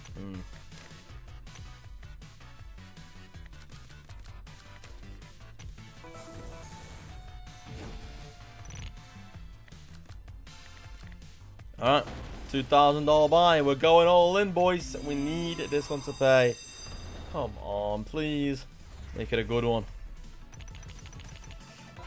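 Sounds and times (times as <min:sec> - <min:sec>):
slot game background music: 0:00.0 - 0:22.0
chiming tones: 0:14.8 - 0:18.5.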